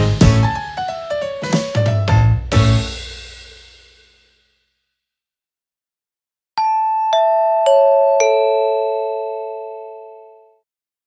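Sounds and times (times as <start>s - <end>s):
bell-like chime note: 6.6s - 10.6s.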